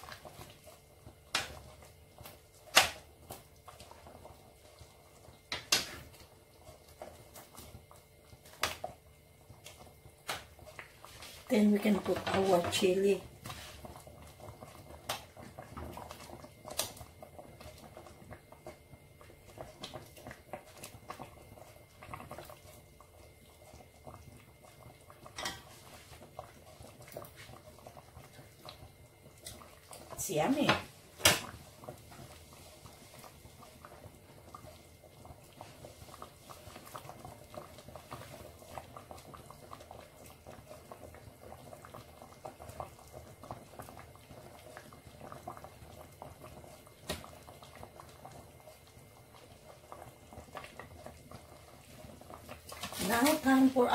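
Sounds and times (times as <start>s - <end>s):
broth simmering and bubbling: 0.0s - 53.9s.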